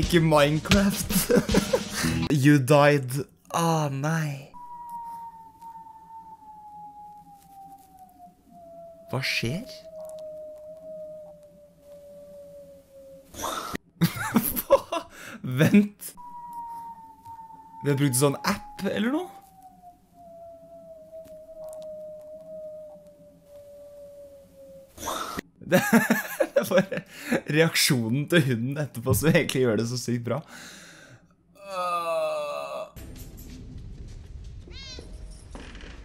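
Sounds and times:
man whistling falling note: 4.6s - 12.3s, 16.2s - 24.3s
faint clicks: 9.9s - 12.1s, 21.2s - 23.7s.

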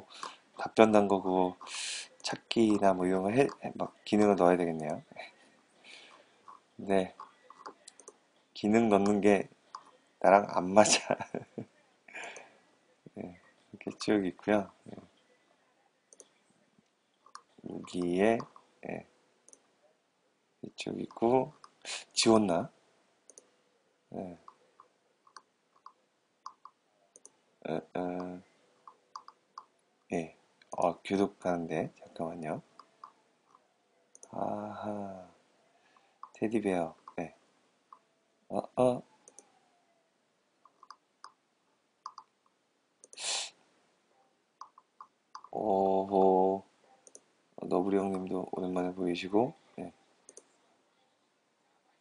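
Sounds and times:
computer mouse clicks: 7.2s - 8.2s, 9.0s - 10.0s, 17.2s - 18.7s, 23.3s - 23.5s, 24.4s - 27.4s, 28.2s - 29.7s, 32.8s - 34.3s, 36.2s - 36.4s, 39.2s - 39.5s, 40.6s - 41.4s, 42.0s - 42.4s, 44.6s - 45.6s, 47.0s - 47.3s, 50.3s - 50.5s.

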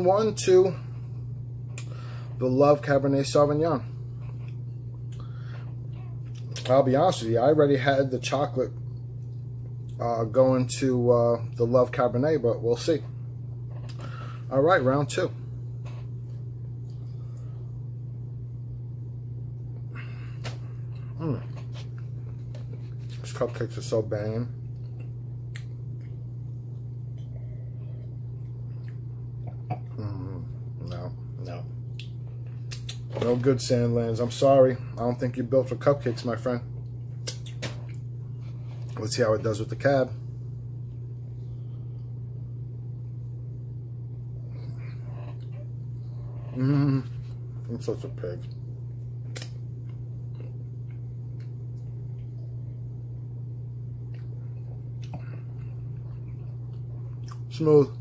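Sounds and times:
faint high whine: 0.0s - 58.0s
steady low hum: 0.0s - 58.0s
person chewing with mouth clicks: 31.9s - 33.1s, 37.2s - 37.8s.

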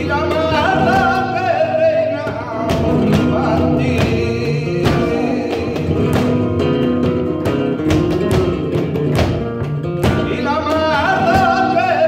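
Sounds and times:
man singing: 0.0s - 9.2s, 9.8s - 12.0s
flamenco guitar: 0.0s - 12.0s
rhythmic hand-clapping: 2.6s - 12.0s.

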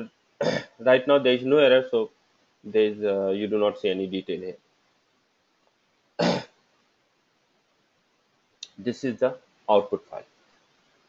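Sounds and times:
man clearing throat: 0.4s - 0.8s, 6.2s - 6.6s.

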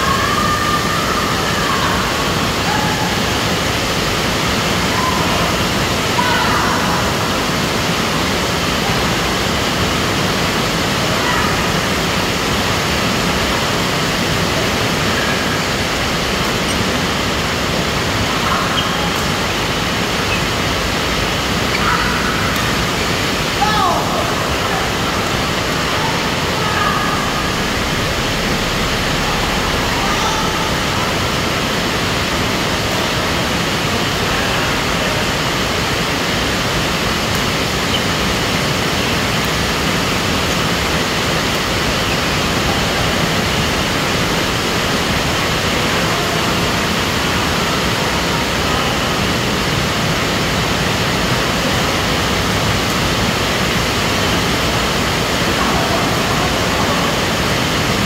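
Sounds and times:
loud steady rushing noise: 0.0s - 58.0s.

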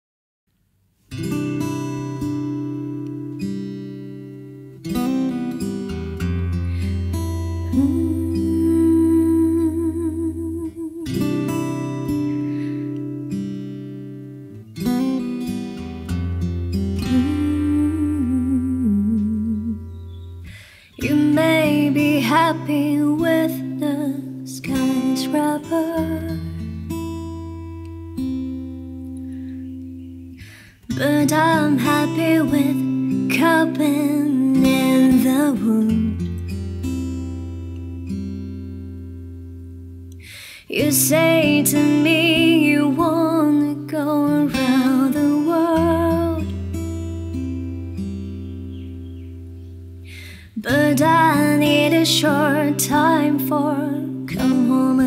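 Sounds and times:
acoustic guitar chords: 1.0s - 55.0s.

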